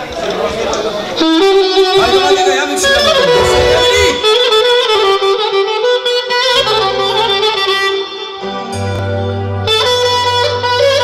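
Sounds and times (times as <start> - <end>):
bass notes: 3.0 - 4.5.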